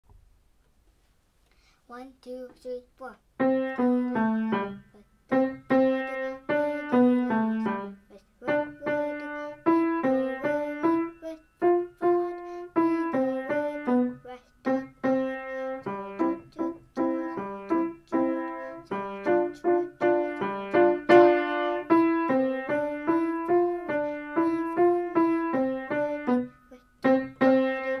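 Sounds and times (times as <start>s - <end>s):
grand piano melody: 3.4s - 7.9s, 8.5s - 28.0s.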